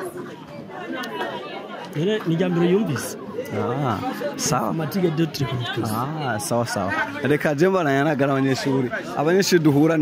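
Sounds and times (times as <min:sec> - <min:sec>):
background chatter: 0:00.0 - 0:10.0
interview voices: 0:00.6 - 0:10.0.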